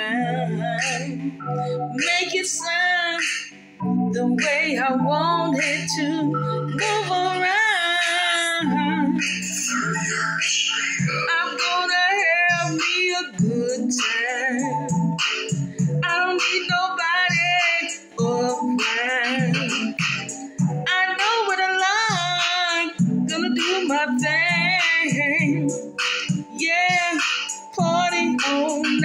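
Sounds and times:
woman singing with vibrato: 0.0 - 10.3, 11.1 - 15.0, 16.0 - 25.8, 26.4 - 29.0.

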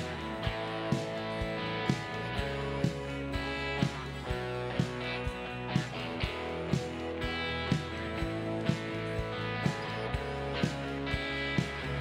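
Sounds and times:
steady beat: 0.0 - 12.0
strummed guitar chords: 0.0 - 12.0.

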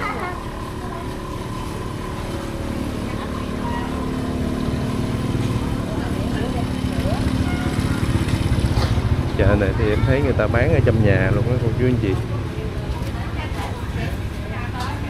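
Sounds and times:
motor scooter engines running: 0.0 - 15.0.

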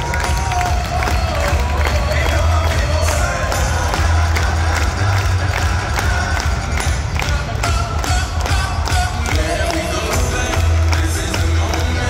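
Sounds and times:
music over stadium loudspeakers: 0.0 - 12.0.

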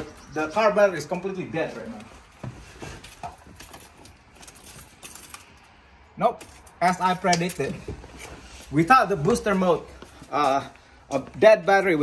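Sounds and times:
car keys jangling: 3.0 - 5.8, 6.4 - 7.8.

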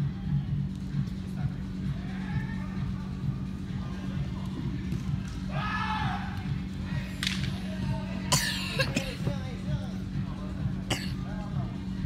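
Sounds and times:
faint voices in a hall: 0.0 - 12.0
person coughing: 8.3 - 9.3, 10.9 - 11.2.

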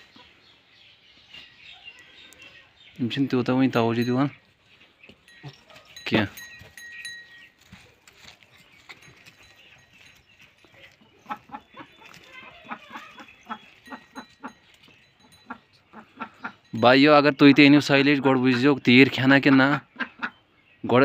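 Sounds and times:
sheep chewing: 4.4 - 16.6.

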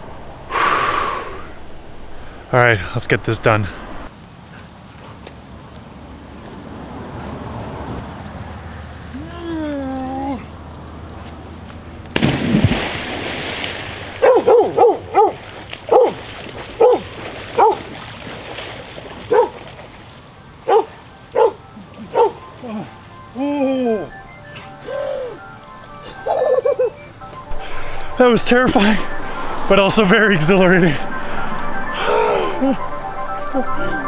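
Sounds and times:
person crying out: 9.2 - 10.4, 22.6 - 24.2, 24.8 - 25.4
loud splash into water: 12.1 - 14.2
dog barking: 14.2 - 16.2, 16.8 - 17.8, 19.3 - 19.6, 20.7 - 22.4.

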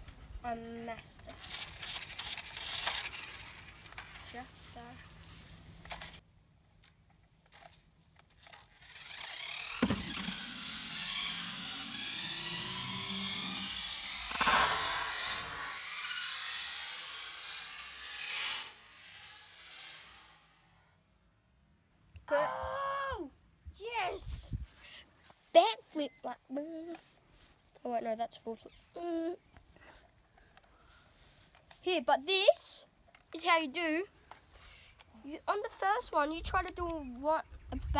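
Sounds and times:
toy car motor whining: 1.0 - 4.9, 7.6 - 20.8
toy car knocking on ramp: 9.8 - 10.4.

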